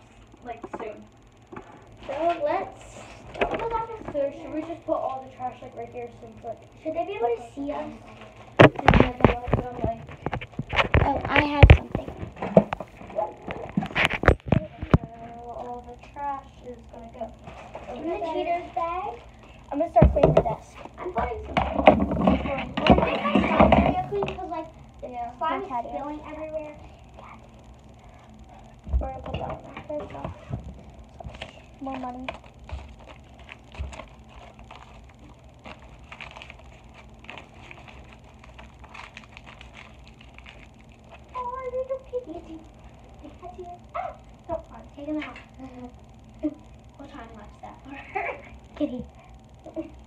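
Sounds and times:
girl talking indistinctly: 2.0 - 10.2, 11.0 - 12.2, 14.5 - 27.5, 28.8 - 30.6, 31.4 - 32.4, 41.3 - 50.0
papers rustling: 29.7 - 41.6.

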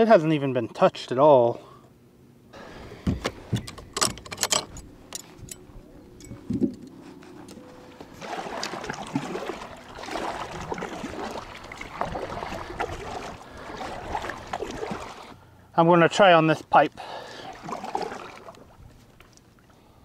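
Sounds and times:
fishing gear clicks and knocks: 3.1 - 8.2
kayak paddle splashing in water: 7.9 - 15.4, 17.2 - 19.7.

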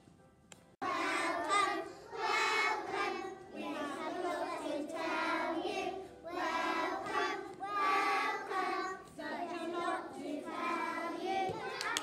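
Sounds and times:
children singing together: 0.8 - 12.0.

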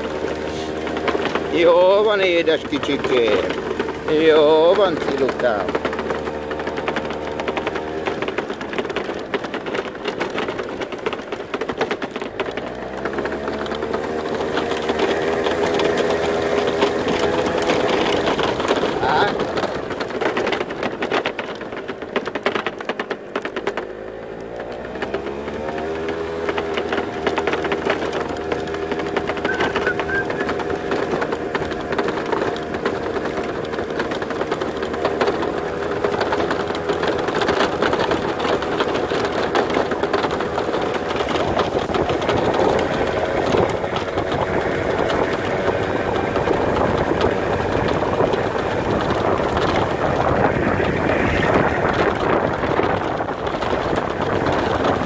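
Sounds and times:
small vehicle engine running with rattle: 0.0 - 55.0.

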